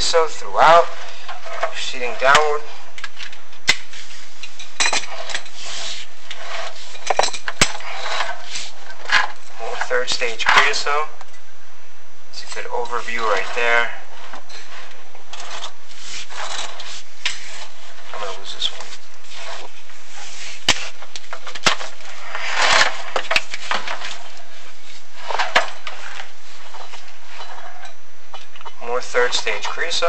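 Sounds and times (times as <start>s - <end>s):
camera scraping along flue wall: 0.0s - 11.3s, 12.4s - 30.0s.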